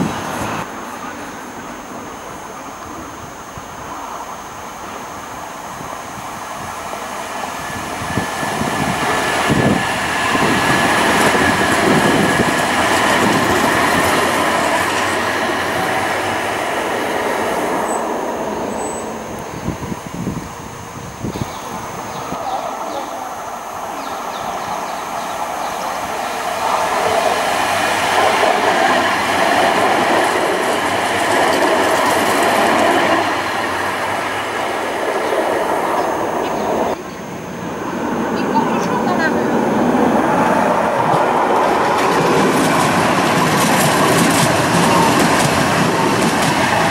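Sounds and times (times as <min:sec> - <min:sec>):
tram motor whine: 0:00.0 - 0:46.9
wheels clacking over rail joints: 0:08.4 - 0:19.1, 0:23.9 - 0:37.0, 0:40.3 - 0:46.9.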